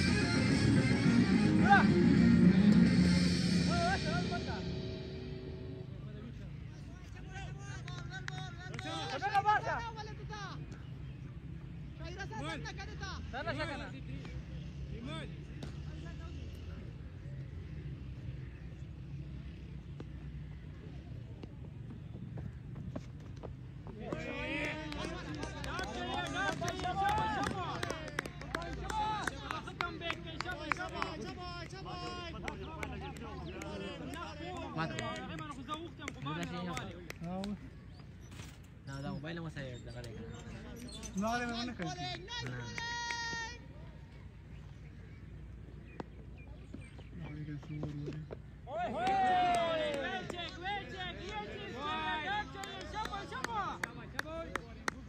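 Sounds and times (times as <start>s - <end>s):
background music: 0.0s - 6.4s
steady low hum: 0.0s - 6.6s.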